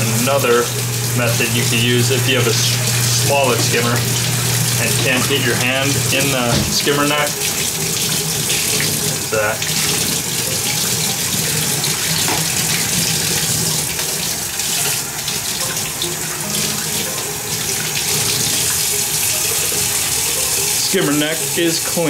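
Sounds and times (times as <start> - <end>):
faucet water running into sink: 0.0 - 22.0.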